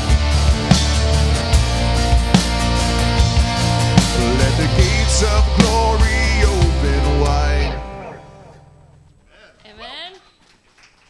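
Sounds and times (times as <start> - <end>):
live rock band with singing: 0.0 - 8.4.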